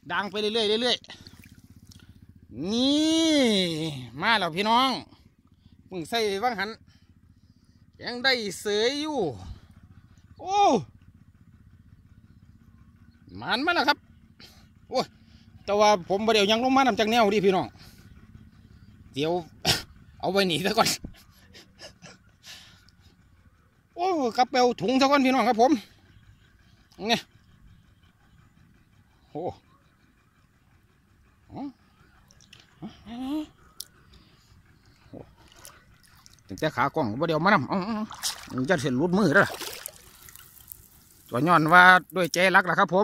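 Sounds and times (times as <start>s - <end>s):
faint low rapid pulsing: 0.0s - 43.0s.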